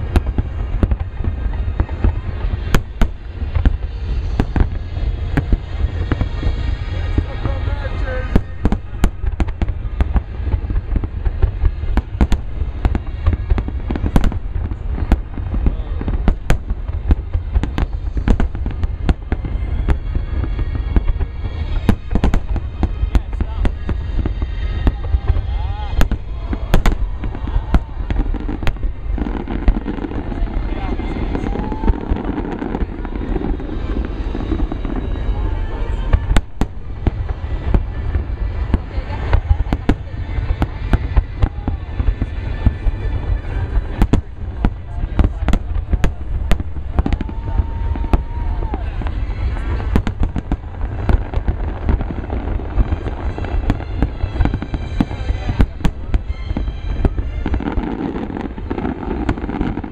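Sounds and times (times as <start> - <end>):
crowd voices: 0.0 - 59.9
deep rumble: 0.0 - 59.9.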